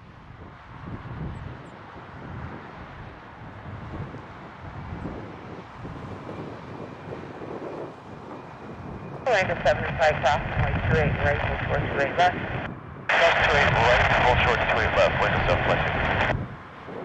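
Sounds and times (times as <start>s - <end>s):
wind buffeting microphone: 0.0s - 17.0s
distant jet engines taxiing: 0.1s - 17.0s.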